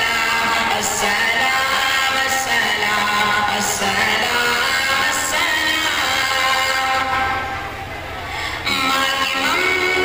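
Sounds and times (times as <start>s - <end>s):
man singing into a microphone: 0.0s - 7.5s, 8.6s - 10.0s.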